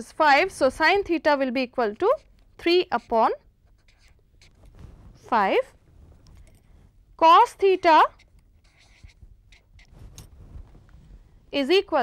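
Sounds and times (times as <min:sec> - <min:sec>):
felt-tip marker scratching on paper: 0:01.8 - 0:04.8, 0:07.7 - 0:10.1.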